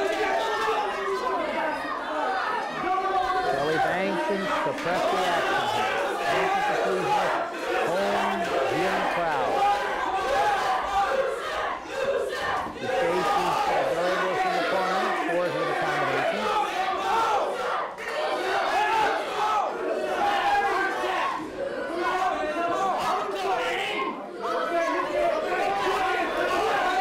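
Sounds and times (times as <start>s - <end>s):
crowd shouting and yelling: 0.0s - 27.0s
man's voice shouting: 3.5s - 9.6s.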